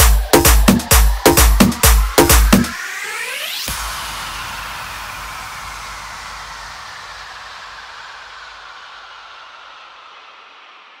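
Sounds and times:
white-noise swell: 0:00.0 - 0:11.0.

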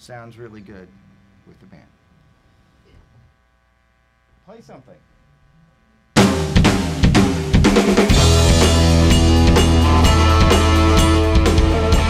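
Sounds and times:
bass guitar notes: 0:06.2 - 0:12.0
drum kit hits: 0:06.2 - 0:12.0
electric guitar notes: 0:06.2 - 0:12.0.

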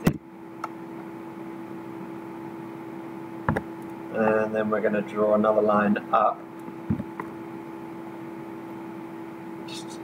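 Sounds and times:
steady hiss and hum: 0:00.0 - 0:10.0.

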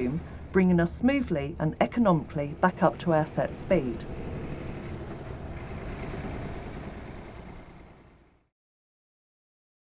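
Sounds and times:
truck road noise on highway: 0:00.0 - 0:08.5.

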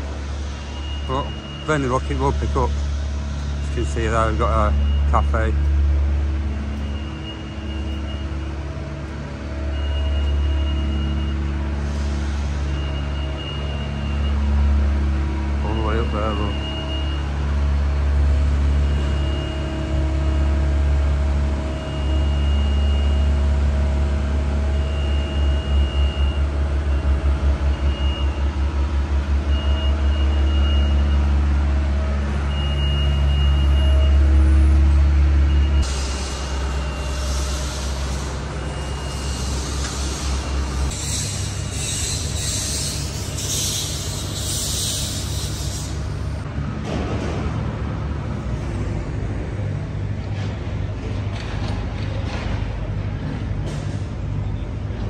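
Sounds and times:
diesel engine running: 0:00.0 - 0:55.0
short high warning beeps: 0:00.6 - 0:02.4
rush of hiss: 0:35.9 - 0:46.3.

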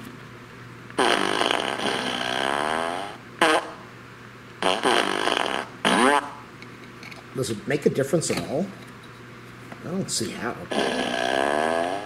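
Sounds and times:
recorded fart sounds: 0:01.0 - 0:03.9, 0:04.6 - 0:06.5, 0:10.7 - 0:12.0.

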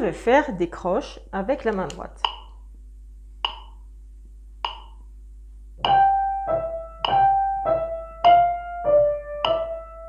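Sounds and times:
metronome clicking: 0:02.2 - 0:02.6, 0:03.4 - 0:03.8, 0:04.6 - 0:05.0, 0:07.0 - 0:07.3, 0:09.4 - 0:09.7
piano notes: 0:05.8 - 0:10.0.

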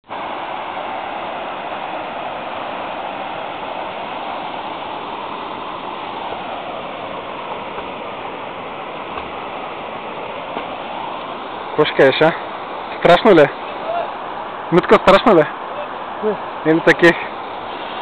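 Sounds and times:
river water rushing: 0:00.0 - 0:18.0.

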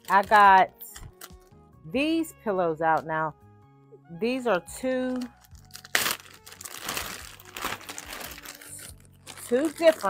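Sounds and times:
plastic bag crinkling: 0:00.0 - 0:01.5, 0:05.1 - 0:10.0.

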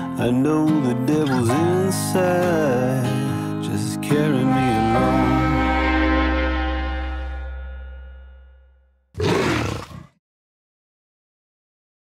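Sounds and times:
big cat roar: 0:09.2 - 0:10.2.

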